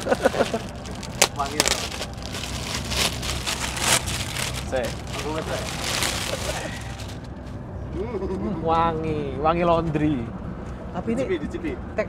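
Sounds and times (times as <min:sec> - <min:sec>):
plastic bag crinkling: 0:00.0 - 0:07.5
bus engine drone: 0:00.0 - 0:12.0.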